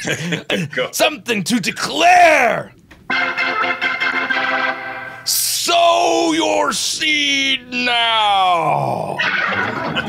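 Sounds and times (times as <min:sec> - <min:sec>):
organ holding a chord: 0:03.1 - 0:05.3.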